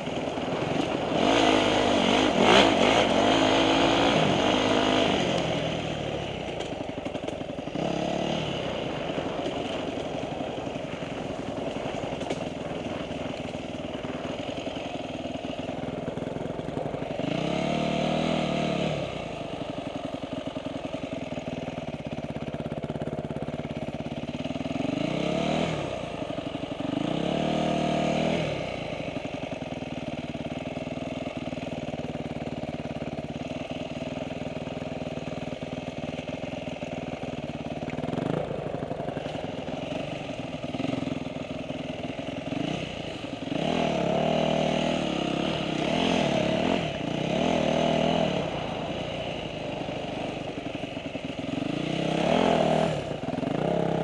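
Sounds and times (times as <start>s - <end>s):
dirt bike engine revving: 0.2s - 6.6s, 7.6s - 14.6s, 16.6s - 19.8s, 24.7s - 29.1s, 38.0s - 54.0s.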